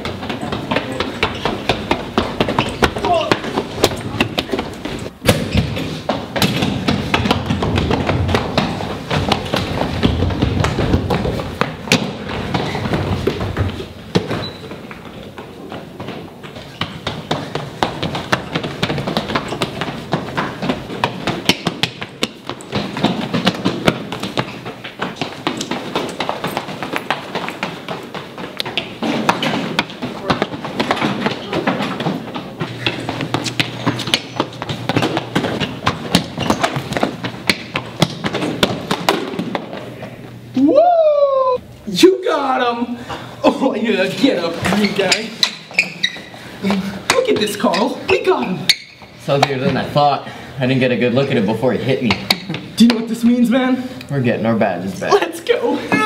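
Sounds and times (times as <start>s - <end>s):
running footsteps on tiled floor: 0.0s - 41.4s, 43.1s - 53.9s.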